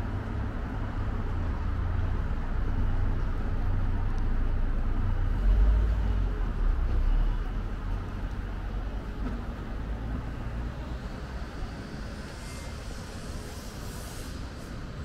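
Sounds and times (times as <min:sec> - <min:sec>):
low rumble of street traffic: 0:00.0 - 0:15.0.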